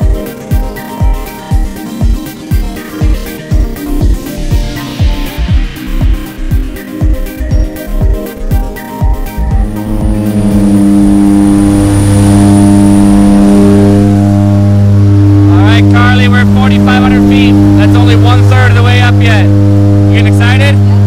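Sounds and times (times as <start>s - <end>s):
propeller engines droning: 0.0s - 21.0s
people talking: 15.5s - 19.5s, 20.1s - 20.8s.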